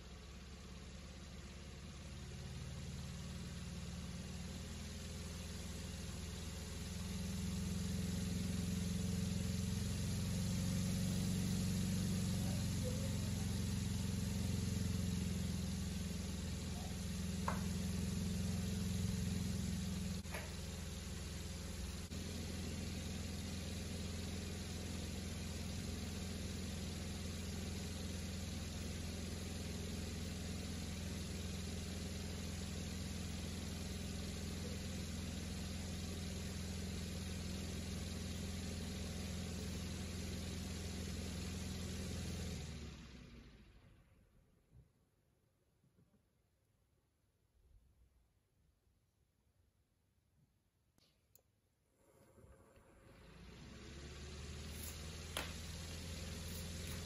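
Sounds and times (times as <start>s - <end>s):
small motor humming: 7.0s - 43.5s, 52.0s - 57.0s.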